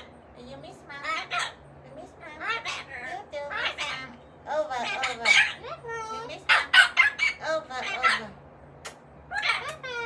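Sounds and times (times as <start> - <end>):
parrot squawking: 0.0 - 8.4, 9.2 - 10.0.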